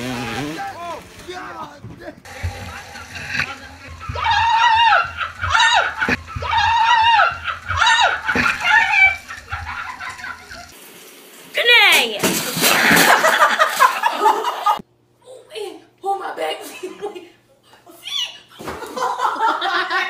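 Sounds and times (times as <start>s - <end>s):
shower spraying water in a bathtub: 2.3s - 14.0s
person shrieking: 4.2s - 9.2s.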